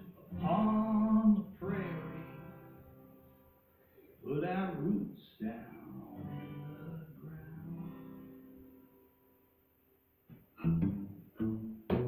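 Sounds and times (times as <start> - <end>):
acoustic guitars strumming chords: 0.0 - 9.3, 10.3 - 12.0.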